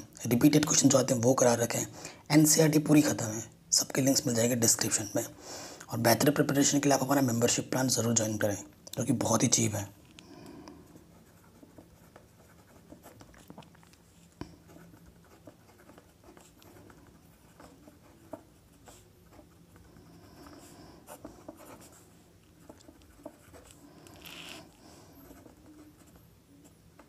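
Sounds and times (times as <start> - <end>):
pen scratching on paper: 10.9 - 27.0.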